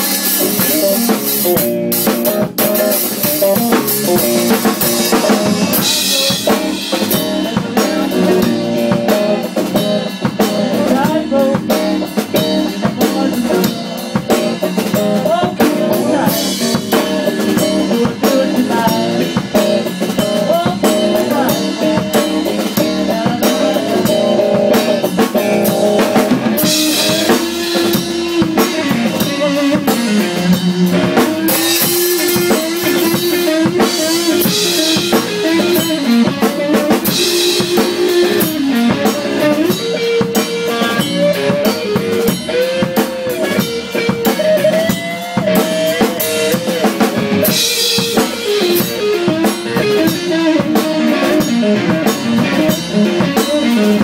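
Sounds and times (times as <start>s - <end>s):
drum beat: 0.0s - 54.0s
electric guitar: 0.0s - 54.0s.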